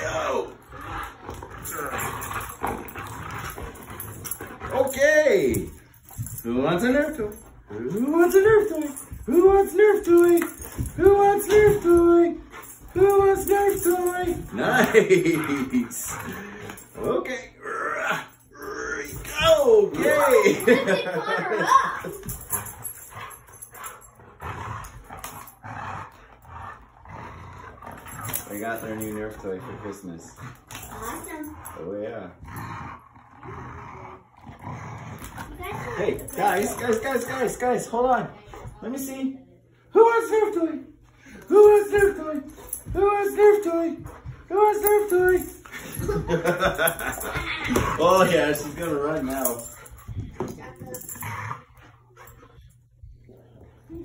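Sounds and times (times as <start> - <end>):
dogs growling: 0.0 - 37.6, 41.1 - 54.0.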